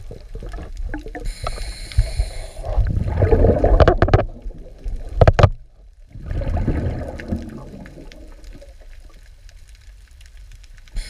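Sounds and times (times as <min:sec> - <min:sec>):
underwater water sloshing: 0:00.0 - 0:10.7.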